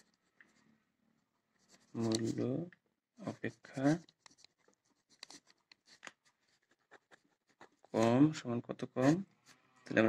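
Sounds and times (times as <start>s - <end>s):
pen scratching on paper: 1.6s - 2.4s, 3.2s - 8.2s.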